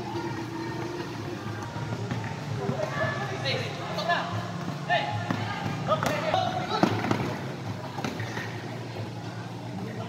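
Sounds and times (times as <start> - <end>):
voices of people: 0.0 - 10.0.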